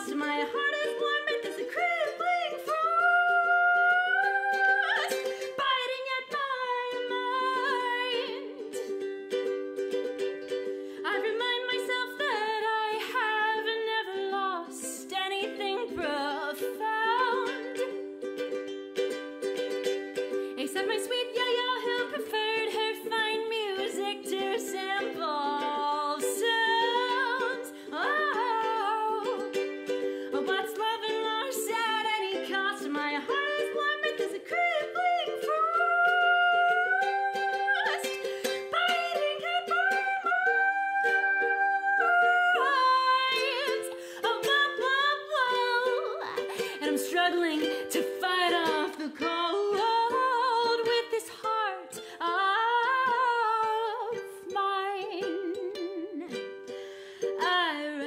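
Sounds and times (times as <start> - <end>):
woman singing: 0.0 - 18.5, 19.8 - 58.0
strummed ukulele: 0.0 - 58.0.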